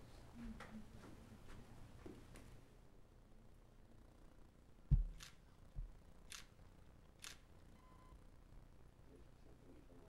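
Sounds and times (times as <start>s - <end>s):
low thump: 4.9s - 5.2s
camera shutter clicks: 6.3s - 6.5s, 7.2s - 7.4s.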